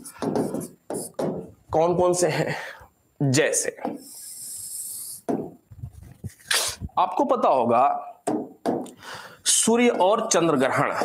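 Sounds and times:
man's breath and mouth sounds: 4.0s - 7.0s
sharp breathy burst: 9.0s - 9.4s.

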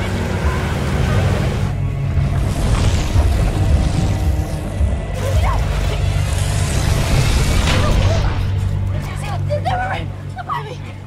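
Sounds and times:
dramatic film score drone: 0.0s - 11.0s.

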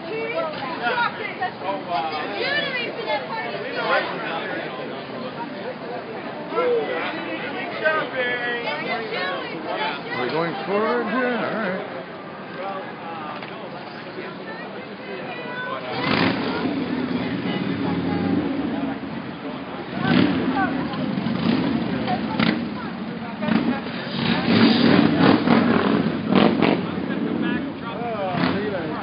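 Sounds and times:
car engines running: 0.0s - 29.0s.

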